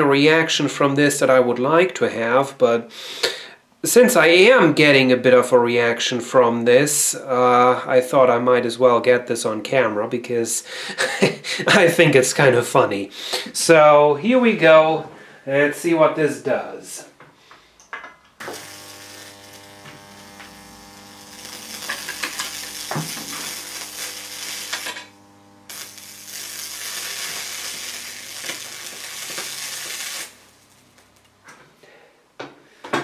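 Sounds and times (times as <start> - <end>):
electric arc buzzing and sizzling: 18.4 - 31.6.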